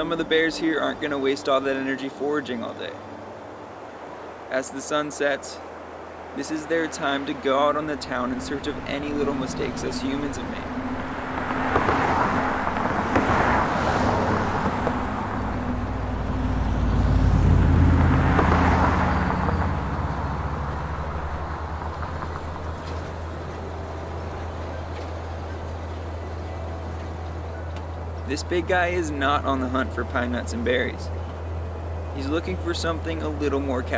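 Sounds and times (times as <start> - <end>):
vehicles passing: 0.0 - 33.9.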